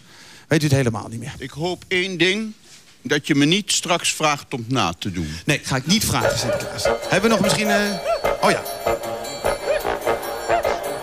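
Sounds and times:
upbeat music with swooping melody: 6.2s - 11.0s.

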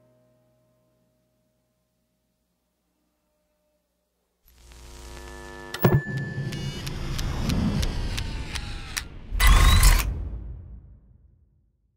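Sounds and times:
low hum: 4.5s - 11.0s
evenly spaced ticks: 6.1s - 8.7s.

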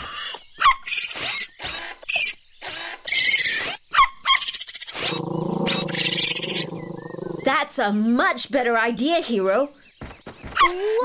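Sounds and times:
low steady growl: 5.0s - 7.5s.

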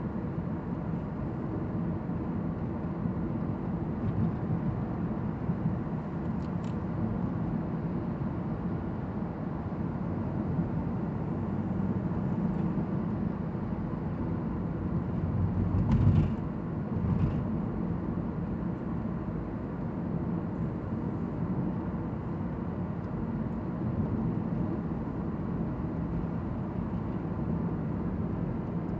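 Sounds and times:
road and tyre rumble in car: 0.0s - 28.9s.

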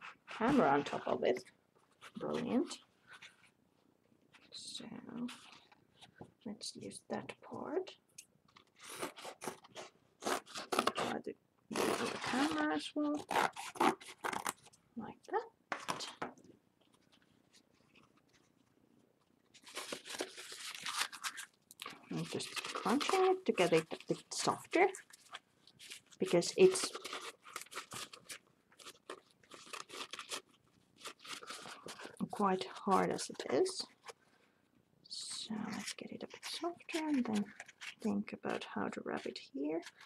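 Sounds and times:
fabric crumpling crunches: 19.5s - 32.3s.

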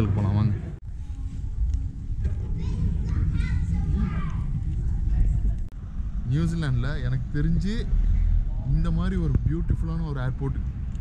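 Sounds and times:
steady low rumble: 0.0s - 11.0s
child-like voice: 2.4s - 5.1s.

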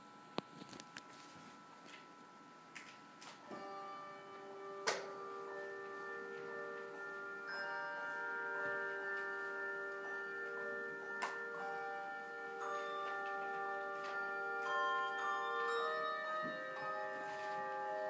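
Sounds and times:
handbell choir ringing: 3.6s - 18.0s.

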